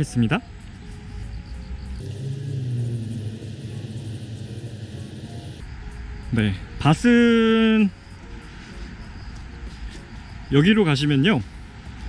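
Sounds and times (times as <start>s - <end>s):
vehicle engine passing by: 2.0s - 5.7s.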